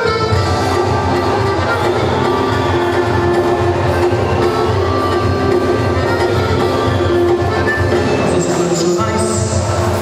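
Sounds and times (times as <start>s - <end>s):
folk music on accordion and guitars: 0.0s - 10.0s.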